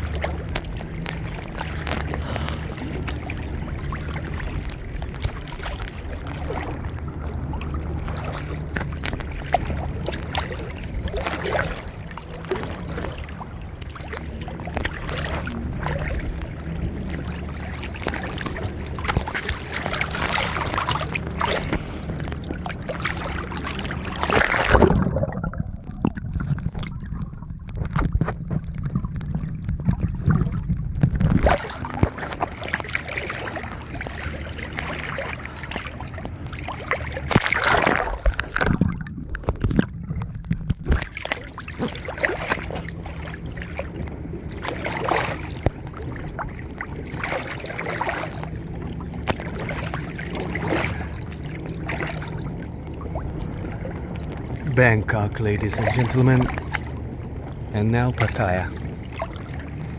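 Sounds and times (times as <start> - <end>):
steady low hum: 0.0 - 59.9
waves lapping and splashing: 0.0 - 59.9.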